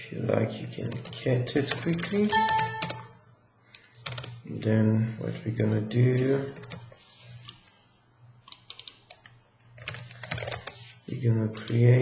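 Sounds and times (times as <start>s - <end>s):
computer keyboard key clicks: 8.5s - 10.7s.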